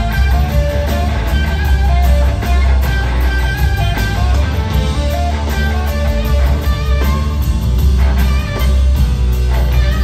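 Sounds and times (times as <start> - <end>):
electric guitar notes: 0.0 - 10.0
heavy bass and drums: 0.0 - 10.0.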